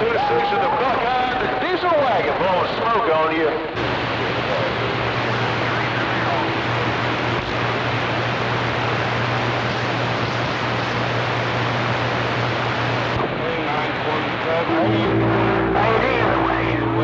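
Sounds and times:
faint garbled radio voices: 0.0s - 17.0s
radio static hiss: 2.4s - 17.0s
steady low hum: 3.6s - 17.0s.

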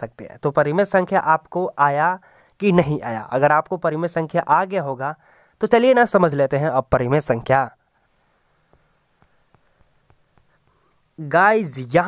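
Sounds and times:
cricket trilling: 0.0s - 12.0s
faint ticks: 2.2s - 2.6s, 7.8s - 11.2s.

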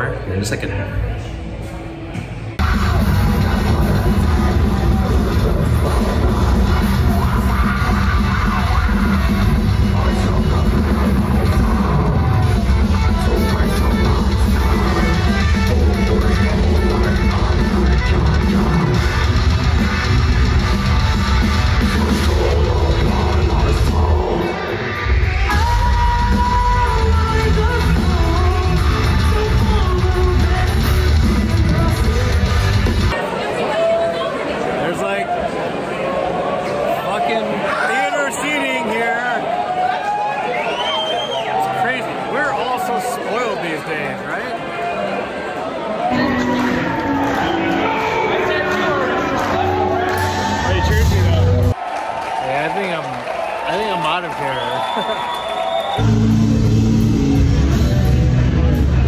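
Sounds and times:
high lead guitar melody: 2.6s - 33.1s, 46.1s - 51.7s
metal band playing live: 2.6s - 33.2s, 56.0s - 59.0s.

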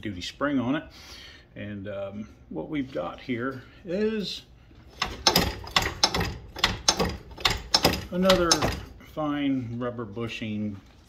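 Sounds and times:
metallic suspension clicks and clunks: 4.9s - 9.0s.

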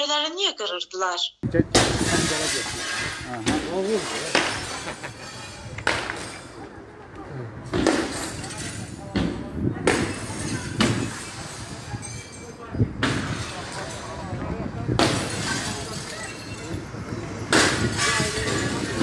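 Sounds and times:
sharp bangs and crashes: 1.5s - 6.6s, 7.6s - 16.8s, 17.4s - 19.0s.

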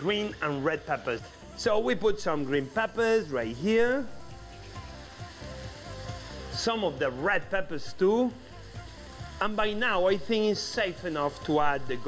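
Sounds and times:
soft background music: 0.0s - 12.0s
vegetables sizzling in a pan: 0.0s - 12.0s.

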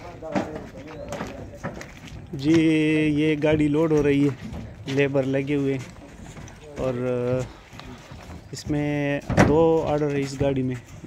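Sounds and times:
low voices: 0.0s - 11.0s.

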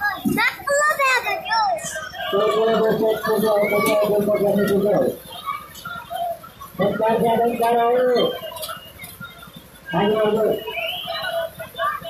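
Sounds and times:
children shouting and squealing: 0.0s - 12.0s.

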